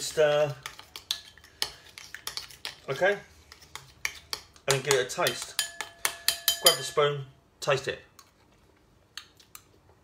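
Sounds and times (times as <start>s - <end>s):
spoon clinking against bowl: 4.3s - 7.1s.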